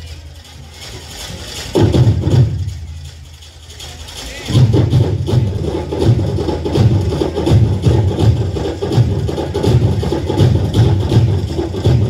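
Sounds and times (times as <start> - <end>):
rhythmic drumming: 0.0 - 12.0.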